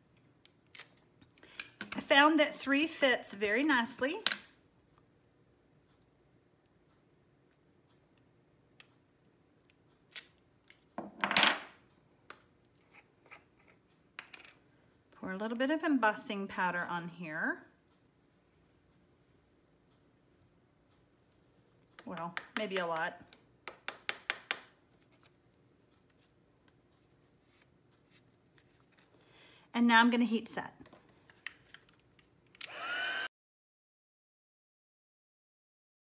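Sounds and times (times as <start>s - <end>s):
stamp block clicks and taps: 22.0s - 24.7s.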